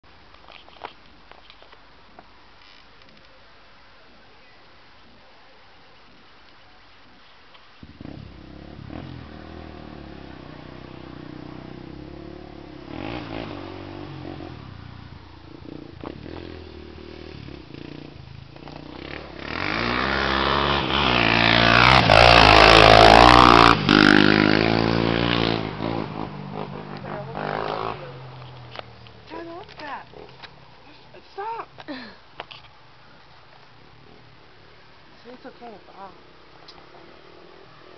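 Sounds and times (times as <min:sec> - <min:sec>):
steady low hiss: 0:00.0 - 0:37.9
quad engine revving: 0:07.8 - 0:14.9, 0:15.6 - 0:28.4.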